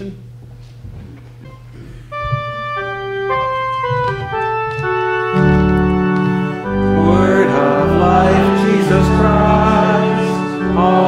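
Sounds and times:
deep organ bass notes: 1.4 - 11.0
organ playing chords: 1.4 - 11.0.

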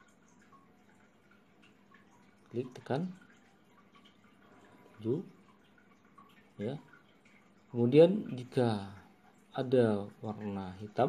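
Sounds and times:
faint steady hum: 0.0 - 11.0
person speaking: 9.6 - 11.0.

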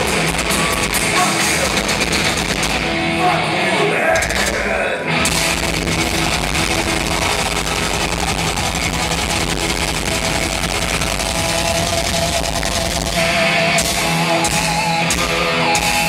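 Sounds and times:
metal band playing live: 0.0 - 16.0.

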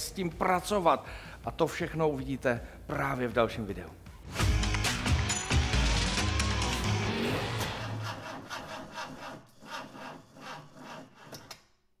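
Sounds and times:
dry scraping strokes: 6.2 - 11.6.

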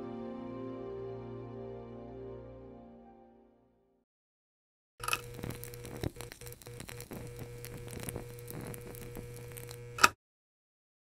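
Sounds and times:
neon sign buzzing and crackling: 5.0 - 10.2.

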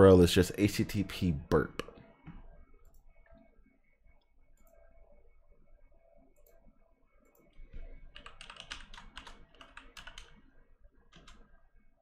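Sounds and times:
typing on computer keyboard: 8.1 - 10.4, 11.1 - 11.6.

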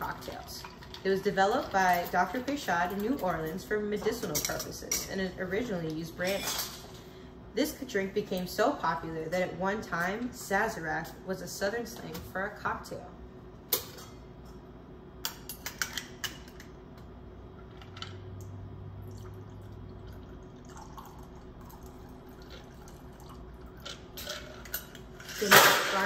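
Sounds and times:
liquid pouring: 0.0 - 2.1, 19.0 - 24.6.

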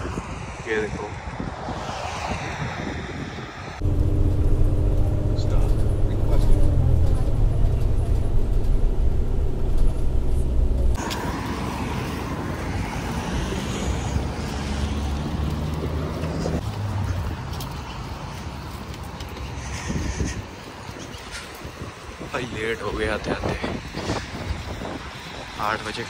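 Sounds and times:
street traffic noise: 0.0 - 26.0
bus rumble from inside: 3.8 - 21.9.

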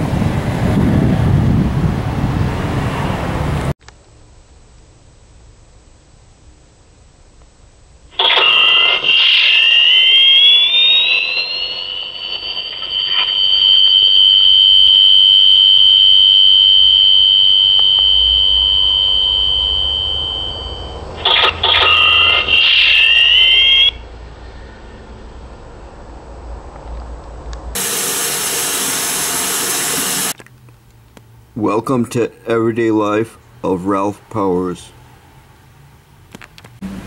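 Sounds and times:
high-pitched gliding whistle: 8.2 - 24.1.

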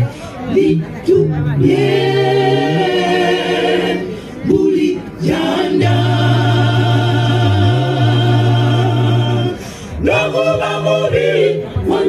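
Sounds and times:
mixed choir singing a cappella: 0.5 - 12.0.

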